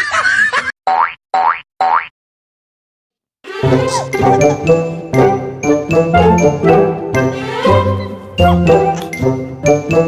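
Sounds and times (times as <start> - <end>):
light jingly background music: 3.6 - 10.0.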